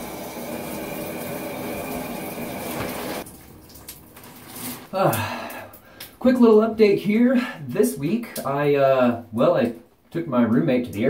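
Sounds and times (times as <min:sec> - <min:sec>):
shower spraying water: 0:00.0 - 0:05.4.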